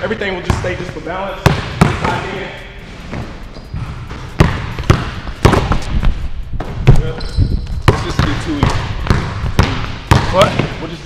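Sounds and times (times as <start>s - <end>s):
basketballs bouncing on hardwood floor: 0.0s - 2.4s, 3.1s - 11.0s.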